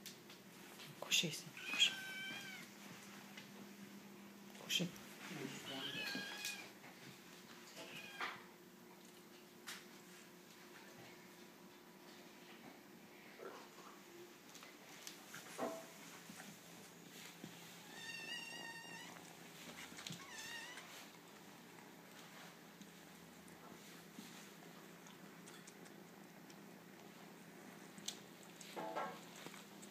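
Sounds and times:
kitten meowing: 1.6s - 2.7s, 5.7s - 6.7s, 7.8s - 8.4s, 17.9s - 19.2s, 20.2s - 20.9s.

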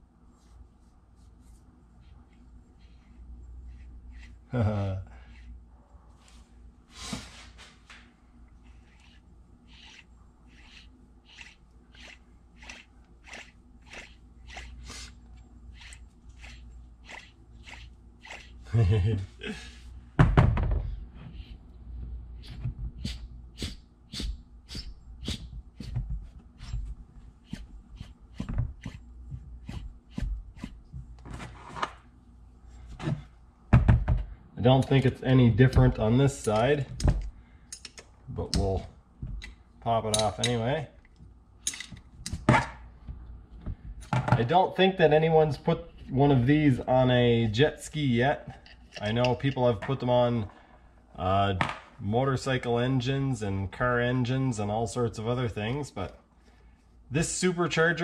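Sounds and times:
wrench clicking on metal: 37.7s - 38.6s.

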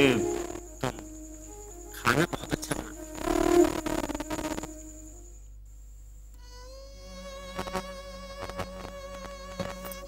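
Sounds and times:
buzzy reedy note: 0.0s - 5.5s.

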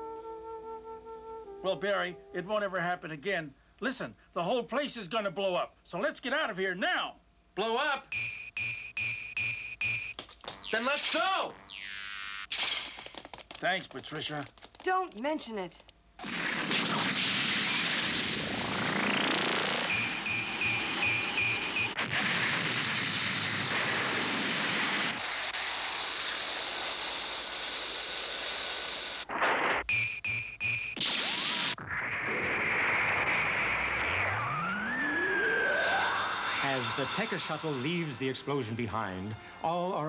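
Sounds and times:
background music: 0.0s - 2.7s, 36.6s - 40.0s
pulsing electronic tones: 8.2s - 12.5s, 17.1s - 22.0s, 29.9s - 38.4s
rising synth sweeps: 31.8s - 38.6s
rocket engine rushing: 32.0s - 38.5s.

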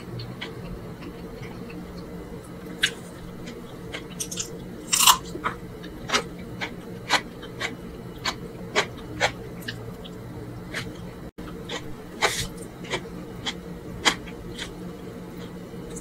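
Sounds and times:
steady low hum: 0.0s - 16.0s
person chewing wetly: 2.7s - 11.0s, 11.6s - 14.8s.

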